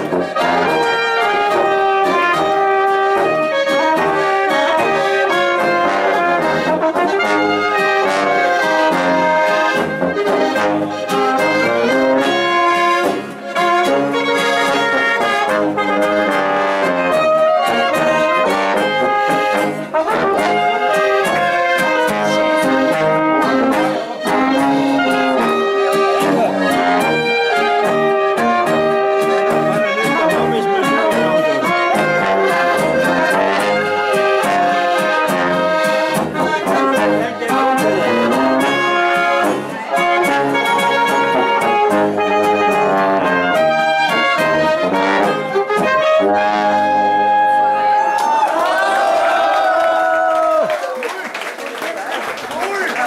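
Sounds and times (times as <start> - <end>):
brass band music: 0.0 - 49.5.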